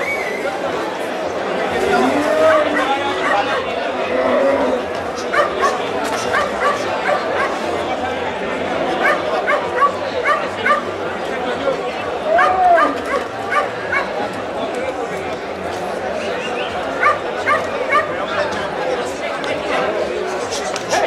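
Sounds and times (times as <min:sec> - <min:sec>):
crowd chattering: 0:00.0 - 0:21.0
dog yipping: 0:05.3 - 0:07.6.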